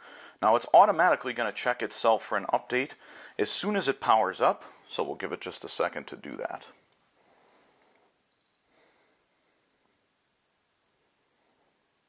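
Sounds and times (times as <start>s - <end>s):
faint high-pitched electronic beep: 8.3s - 8.7s.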